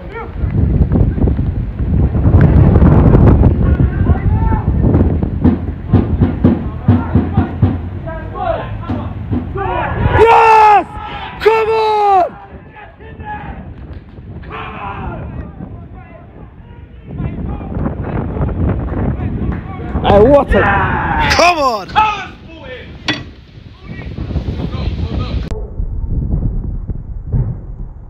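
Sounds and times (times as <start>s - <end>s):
players and spectators shouting: 8.3s - 13.6s, 20.2s - 22.4s
heavy low rumble: 22.9s - 28.0s.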